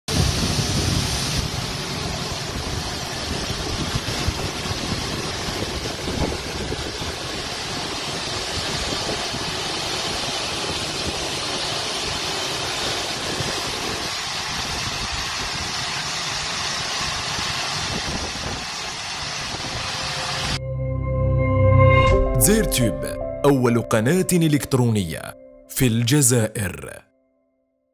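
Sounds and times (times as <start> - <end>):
aircraft turbine roar: 0.1 - 23.2.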